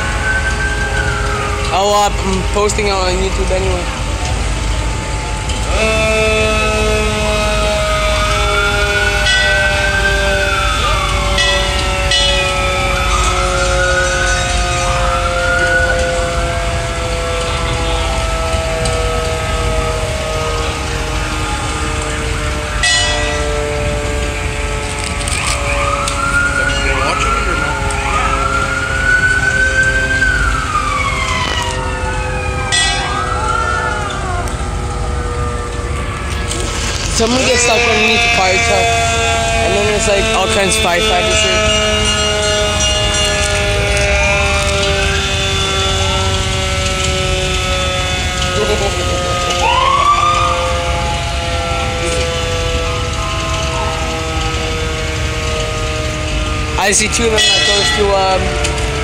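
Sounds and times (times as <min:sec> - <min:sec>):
engine rumble: 0:00.0 - 0:59.0
fire truck sirens wailing: 0:00.0 - 0:59.0
short siren blasts: 0:00.0 - 0:59.0.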